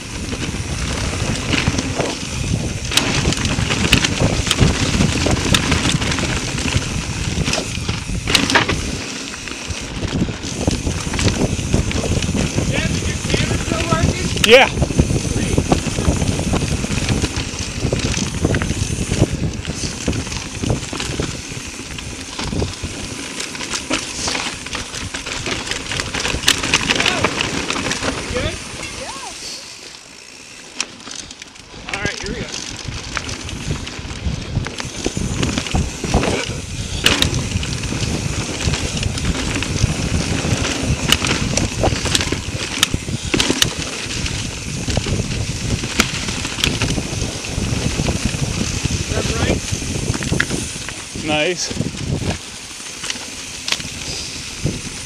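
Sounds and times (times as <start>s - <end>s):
wind on microphone: 0.0s - 29.7s, 31.6s - 55.0s
bike rattling over bumps: 0.0s - 55.0s
bike tyres crunching through leaves: 0.0s - 55.0s.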